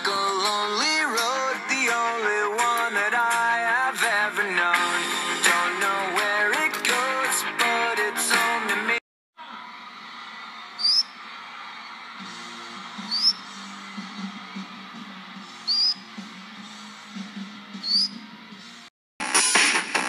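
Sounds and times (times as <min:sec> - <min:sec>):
parrot whistled chirps: 0:10.8 - 0:11.2, 0:13.0 - 0:13.6, 0:15.6 - 0:16.1, 0:17.8 - 0:18.2.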